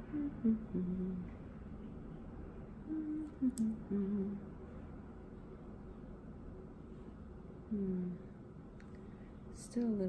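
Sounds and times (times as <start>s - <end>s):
woman humming: 0.0s - 1.3s, 2.8s - 4.5s, 7.7s - 8.3s.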